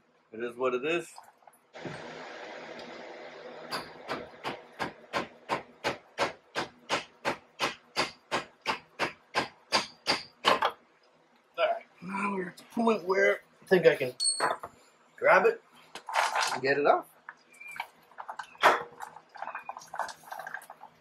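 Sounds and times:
steady hiss: 0:01.7 - 0:03.7
hammer striking metal: 0:03.7 - 0:10.6.

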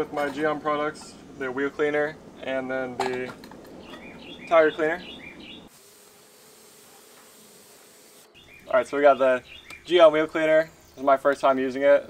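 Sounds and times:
hose spray hissing: 0:05.7 - 0:08.3.

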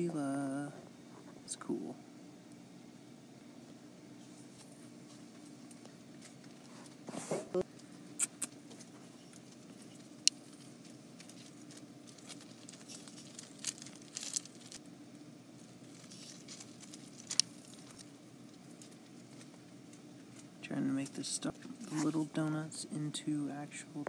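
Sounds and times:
faint steady hum: 0:00.0 - 0:24.0.

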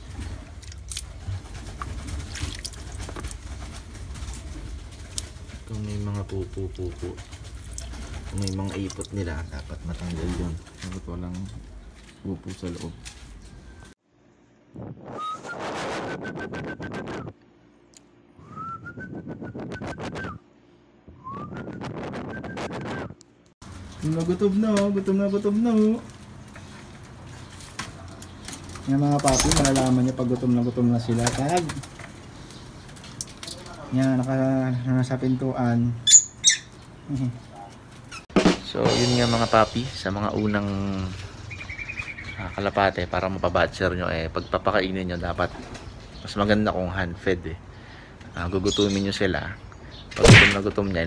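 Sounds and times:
pigeons squeaking: 0:23.7 - 0:38.3, 0:39.2 - 0:47.0, 0:47.8 - 0:51.0
rapid rattling hiss: 0:38.4 - 0:40.3.

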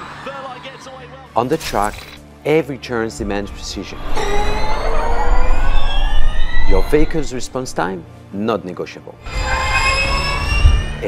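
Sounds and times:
low rumble: 0:03.2 - 0:08.1
electric drivetrain whining: 0:03.8 - 0:08.0.

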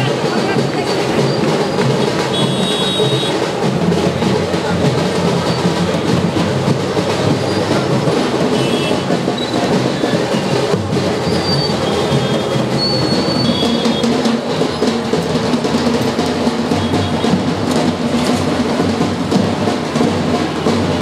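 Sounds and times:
crowd noise: 0:00.0 - 0:21.0
procession drumming: 0:00.0 - 0:21.0.

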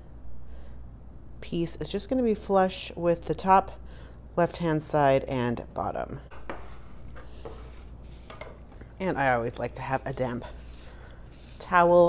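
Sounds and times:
paper rustling: 0:06.9 - 0:08.4, 0:10.5 - 0:12.0.

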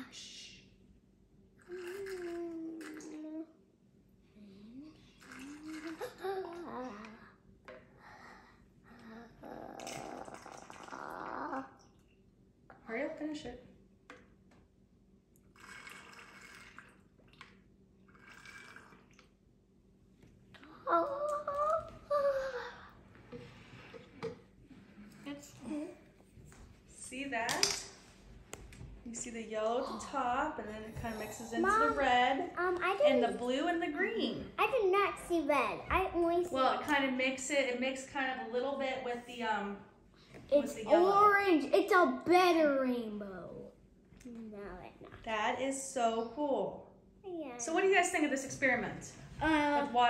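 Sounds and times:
child buzzing gurgling noise: 0:01.6 - 0:03.5, 0:05.0 - 0:07.1, 0:08.9 - 0:11.9, 0:15.5 - 0:17.0
child humming: 0:01.7 - 0:03.5, 0:08.9 - 0:11.7.

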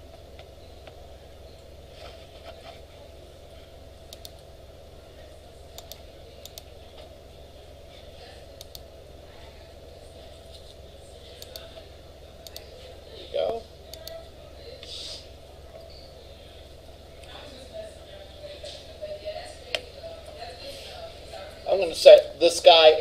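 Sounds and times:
low room hum: 0:00.0 - 0:23.0.

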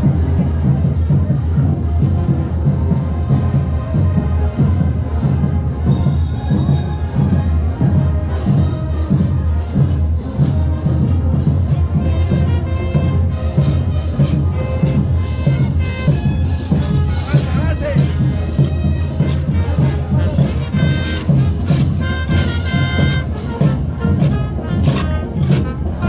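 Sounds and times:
bass drum pulsing: 0:00.0 - 0:26.0
parade band music: 0:00.0 - 0:26.0
wind instrument notes: 0:00.0 - 0:26.0.

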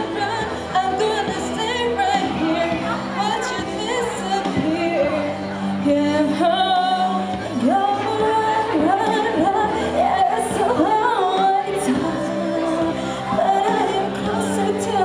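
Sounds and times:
girl singing into a microphone: 0:00.0 - 0:15.0
instrumental backing: 0:00.0 - 0:15.0.

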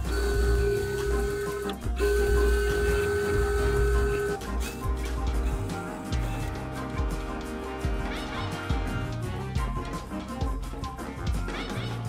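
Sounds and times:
background music with bass thump: 0:00.0 - 0:12.0.

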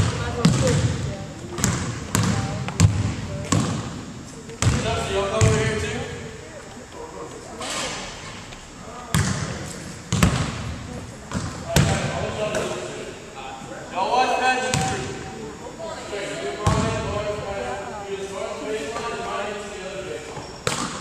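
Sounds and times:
basketballs bouncing on wooden floor: 0:00.0 - 0:03.8, 0:04.6 - 0:05.7, 0:09.1 - 0:10.6.

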